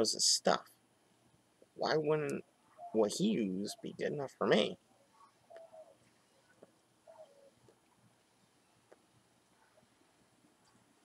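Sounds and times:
dove cooing: 0:04.6 - 0:06.4, 0:07.1 - 0:07.6
soft ticks: 0:08.8 - 0:09.6.

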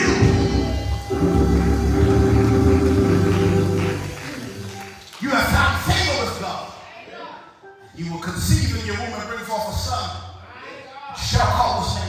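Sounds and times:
church organ chord: 0:00.0 - 0:05.0.

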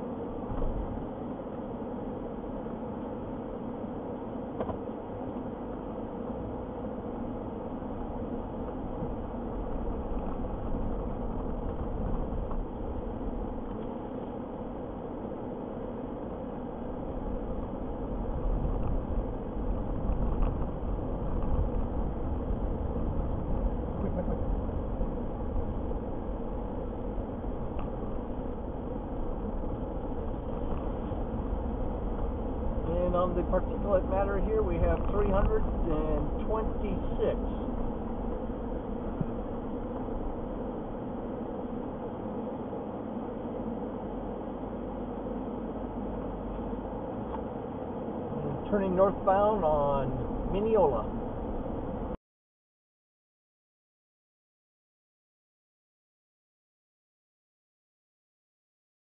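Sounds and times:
deep rumble: 0:00.0 - 0:03.6, 0:04.8 - 0:52.2
vehicle engine and road hum: 0:00.0 - 0:52.2.

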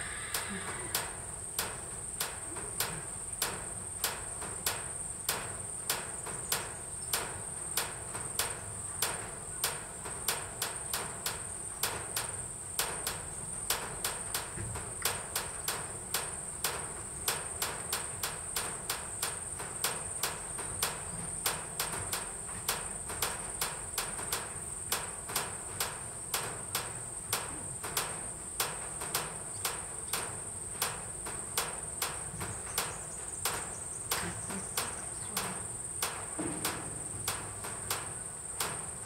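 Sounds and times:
high-pitched insect chorus: 0:00.0 - 0:03.7, 0:12.2 - 0:39.0.

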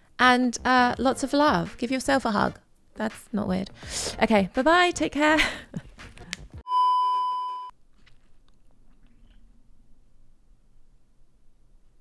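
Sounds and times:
high test-pattern beep: 0:06.7 - 0:07.7.

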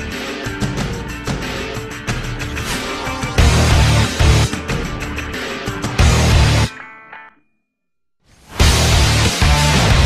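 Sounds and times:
dramatic theme music: 0:00.0 - 0:07.2.

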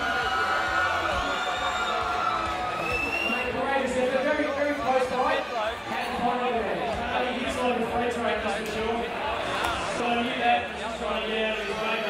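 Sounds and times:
spectators cheering: 0:00.0 - 0:06.8
crowd chatter: 0:00.0 - 0:12.0.

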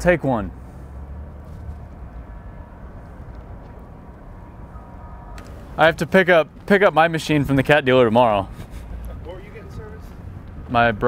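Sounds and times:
low outdoor rumble: 0:00.0 - 0:11.0
faint whining tones: 0:00.6 - 0:07.8.

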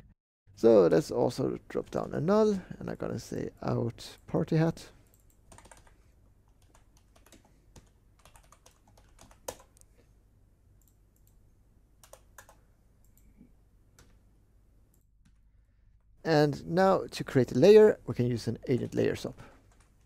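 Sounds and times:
typing on computer keyboard: 0:05.1 - 0:09.8, 0:12.0 - 0:13.2.

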